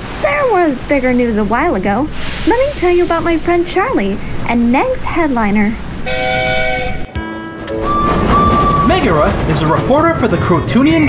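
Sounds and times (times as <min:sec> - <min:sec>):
two-note steam whistle: 0:06.1 - 0:09.4.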